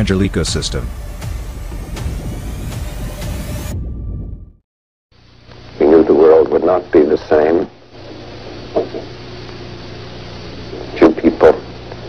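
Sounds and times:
low steady rumble: 0.0s - 4.6s.

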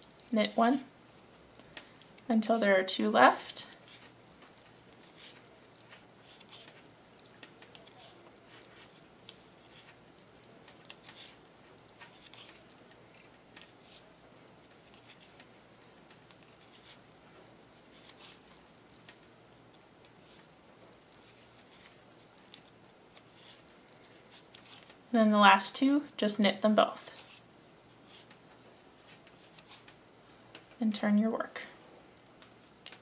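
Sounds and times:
knitting needles clicking: 3.9s - 17.2s, 32.2s - 33.0s.

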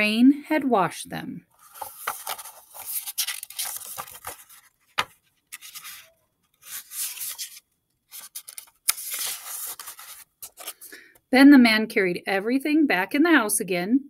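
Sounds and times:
page turning: 1.5s - 10.9s
paper rustling: 1.5s - 10.9s.

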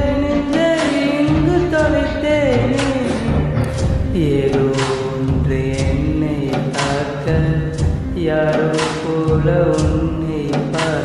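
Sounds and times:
percussion strikes: 0.1s - 11.0s
film song melody: 0.2s - 6.7s.

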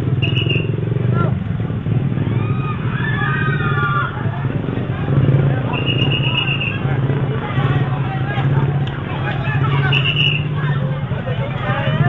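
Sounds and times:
crowd chatter: 0.0s - 12.0s
vehicle engine idling: 0.0s - 12.0s.

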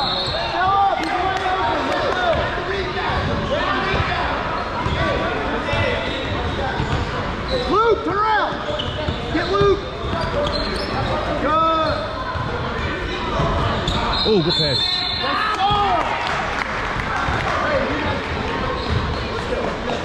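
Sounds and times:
crowd noise: 0.0s - 20.0s.

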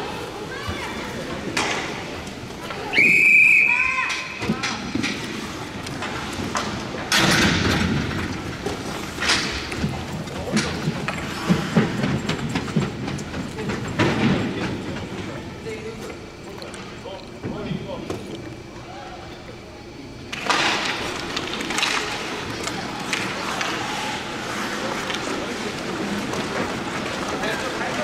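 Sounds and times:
knocks around the rink: 4.1s - 15.2s
voices: 8.5s - 28.0s.

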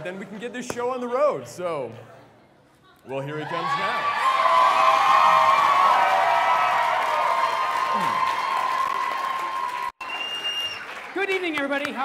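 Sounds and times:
audience applauding and cheering: 3.4s - 12.0s.

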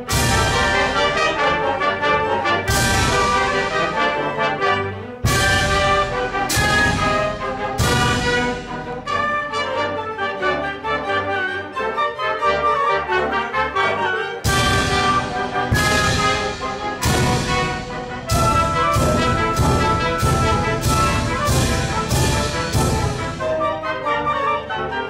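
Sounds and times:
orchestra playing classical piece: 0.0s - 25.0s.

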